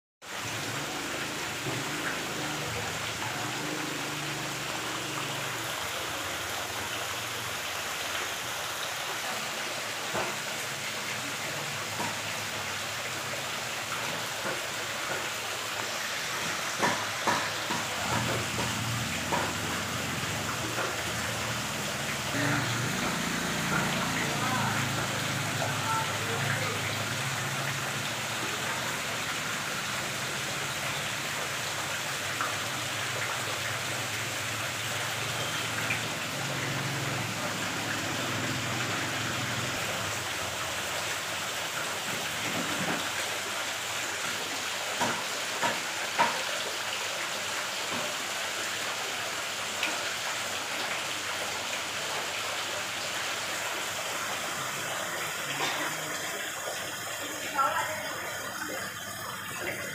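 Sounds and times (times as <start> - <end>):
water splashing into tank: 0.4 - 59.9.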